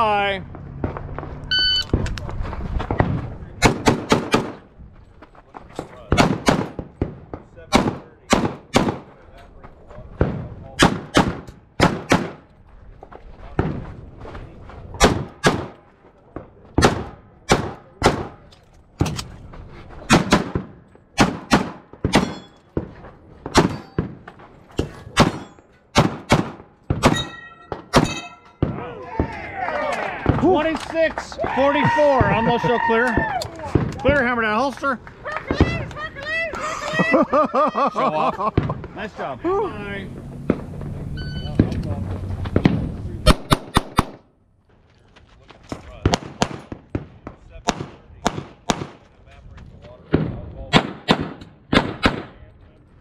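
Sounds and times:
brief ringing tone: 1.5 - 1.9, 41.2 - 41.6
pistol shots in quick pairs: 3.6 - 4.6, 6.1 - 7.1, 7.7 - 9.1, 10.8 - 12.4, 15.0 - 15.8, 16.8 - 18.4, 20.1 - 22.5, 23.5 - 24.2, 25.2 - 28.8, 42.6 - 44.2, 46.0 - 49.0, 50.1 - 52.4.

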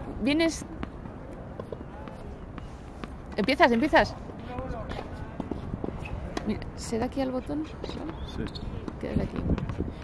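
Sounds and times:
tennis ball bouncing on court: 0.3 - 10.0.

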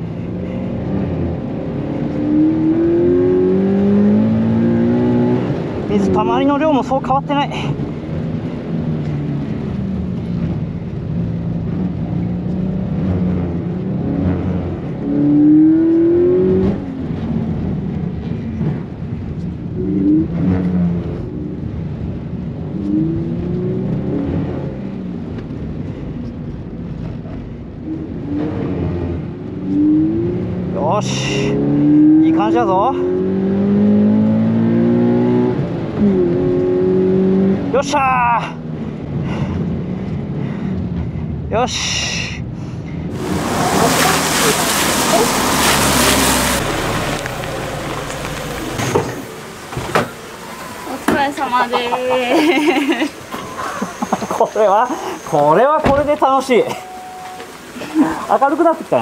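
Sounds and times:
car engine revving: 0.0 - 25.8, 26.6 - 40.4, 43.1 - 59.0
road noise: 0.0 - 59.0.

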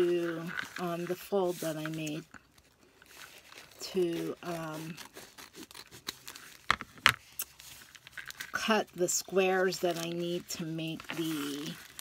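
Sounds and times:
paper rustling: 0.0 - 8.6, 9.6 - 12.0.

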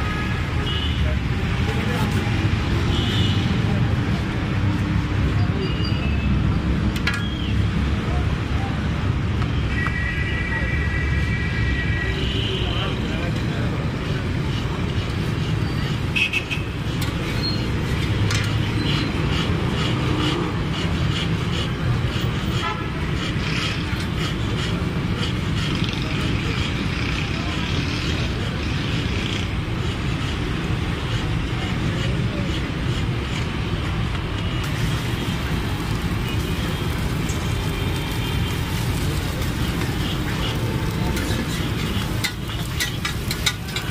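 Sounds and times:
street traffic rumble: 0.0 - 43.9.

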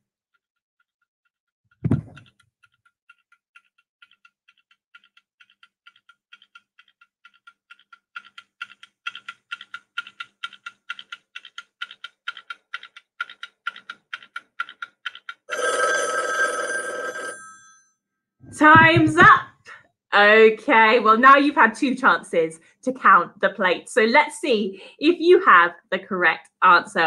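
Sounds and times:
alarm bell ringing: 15.5 - 17.8.

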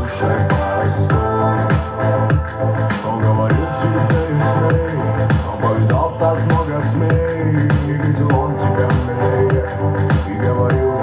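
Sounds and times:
song with heavy bass beat: 0.0 - 11.0.

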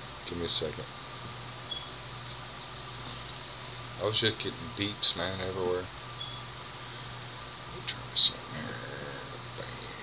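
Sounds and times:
fan hum with hiss: 0.0 - 10.0.

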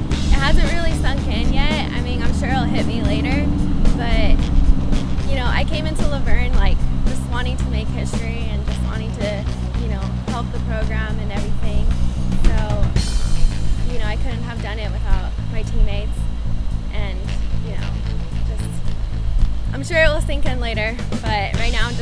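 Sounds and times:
rock music: 0.0 - 14.2, 16.2 - 19.8.

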